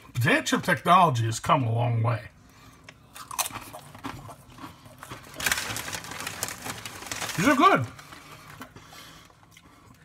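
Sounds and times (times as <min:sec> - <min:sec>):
chip bag rustling: 0:05.0 - 0:09.1.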